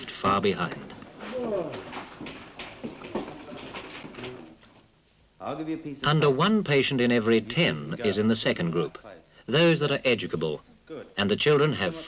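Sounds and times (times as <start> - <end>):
young voices chattering: 1.2 - 3.7.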